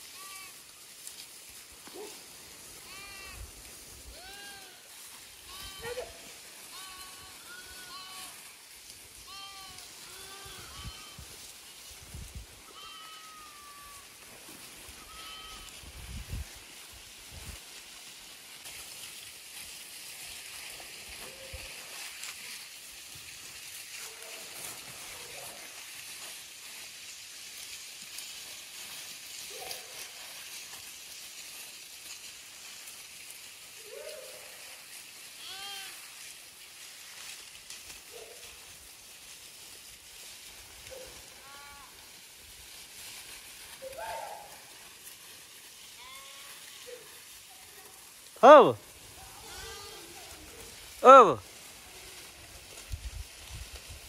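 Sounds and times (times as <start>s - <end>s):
sheep and goats bleating: 0.0s - 0.9s, 2.7s - 11.9s, 12.6s - 16.1s, 34.6s - 36.4s, 41.0s - 42.2s, 45.5s - 52.8s.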